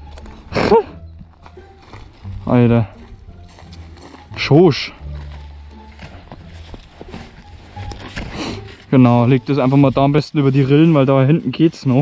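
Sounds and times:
footsteps on dry grass: 0.0 - 12.0.

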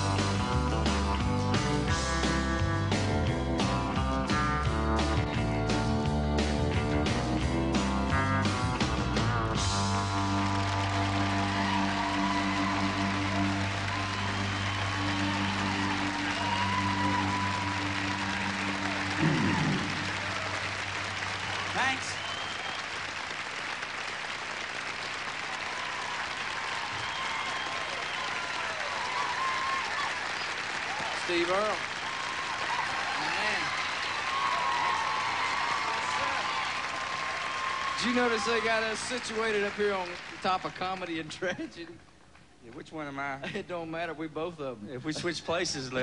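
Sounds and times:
country-rock band playing: 0.0 - 21.1
audience applauding and cheering: 0.0 - 41.9
whistles from audience: 11.7 - 17.9, 21.9 - 23.0, 26.8 - 30.6.

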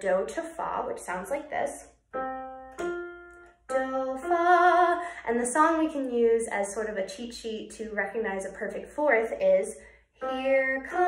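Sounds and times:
electronic keyboard note: 2.1 - 4.5
woman singing: 3.7 - 6.0, 10.2 - 11.0.

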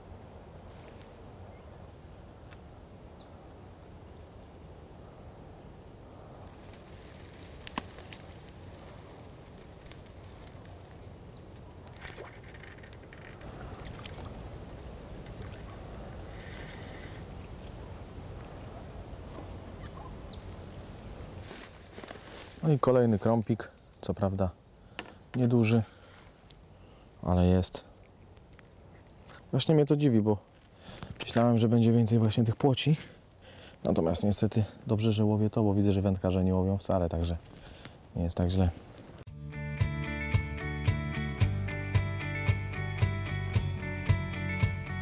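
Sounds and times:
faint bird calls: 15.3 - 17.8, 18.8 - 20.6.

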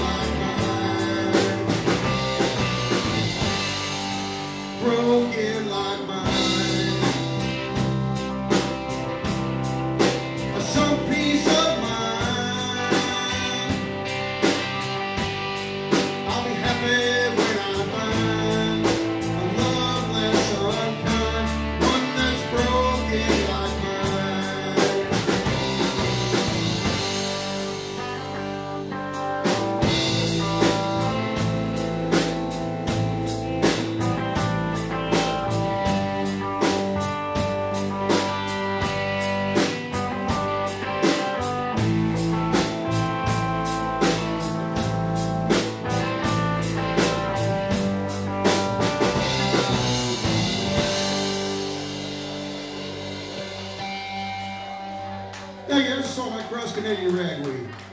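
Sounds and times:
drum kit steady beat: 0.0 - 57.9
electric bass: 0.0 - 57.9
electric guitars: 0.0 - 57.9.

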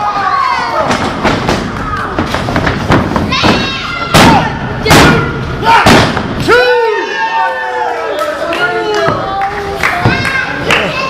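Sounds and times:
loud thuds of wrestlers' impacts: 0.8 - 6.4.

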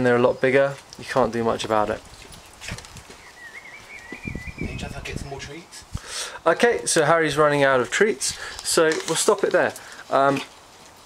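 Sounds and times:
footsteps on paved path: 0.6 - 5.0, 6.0 - 11.0.

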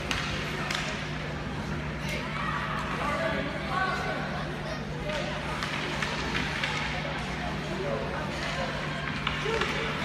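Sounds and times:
hockey sticks clacking: 0.0 - 1.2, 5.0 - 7.4, 8.3 - 10.0
low arena hum: 0.0 - 10.0.

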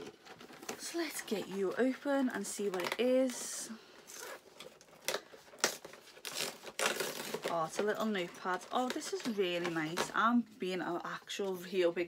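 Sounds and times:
paper crinkling: 0.0 - 10.2
cardboard tearing: 4.1 - 7.9.

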